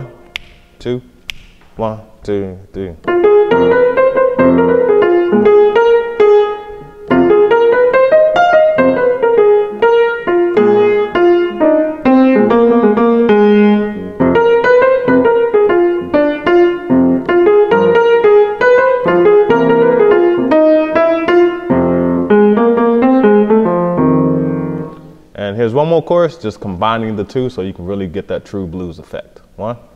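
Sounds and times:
jazz blues piano: 0:03.0 - 0:25.2.

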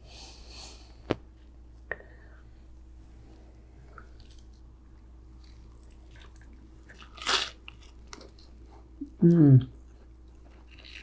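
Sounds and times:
crunchy bite into sandwich: 0:05.8 - 0:08.5.

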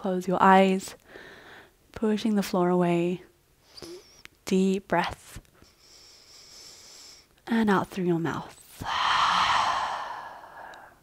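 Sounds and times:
woman exhaling through mouth: 0:08.8 - 0:11.0.

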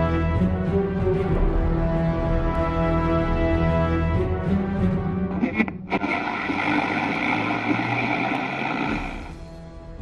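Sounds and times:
background music: 0:00.0 - 0:10.0
radio tuning static: 0:05.3 - 0:09.4
whistling radio tones: 0:05.4 - 0:09.4.

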